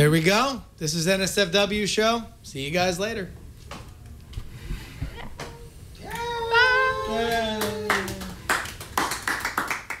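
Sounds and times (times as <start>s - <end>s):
hands clapping: 7.2s - 10.0s.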